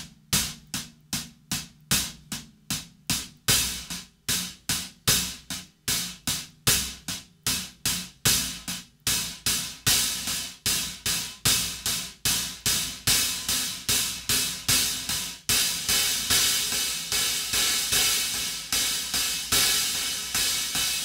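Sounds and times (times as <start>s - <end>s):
hi-hats played with a stick: 0.0s - 21.0s.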